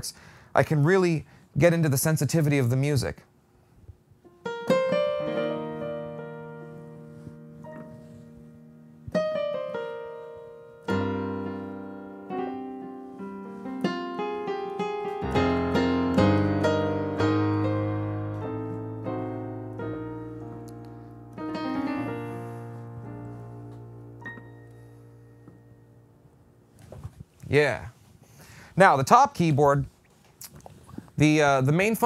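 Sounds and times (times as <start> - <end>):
piano chords over low bass notes: 4.4 - 26.7.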